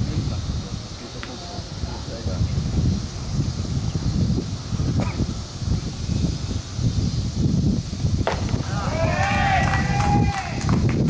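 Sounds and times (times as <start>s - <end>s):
steady low rumble: 0.0s - 11.0s
long shouted call: 8.6s - 10.7s.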